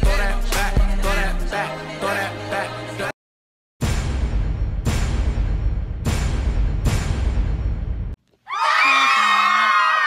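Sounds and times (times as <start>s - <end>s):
group of voices cheering: 8.5s - 10.0s.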